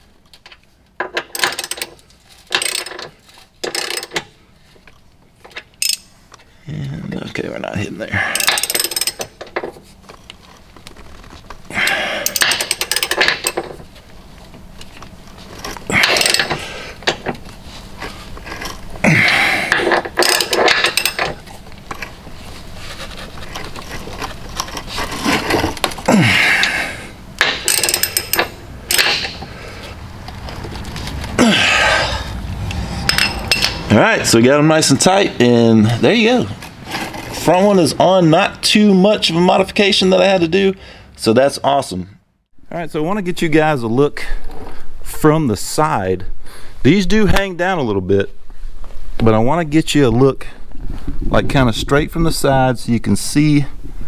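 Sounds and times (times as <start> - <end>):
ratchet wrench clicking: 5.8 - 6.1, 8.4 - 9.3, 12.2 - 13.6, 19.8 - 21.3, 27.4 - 29.4.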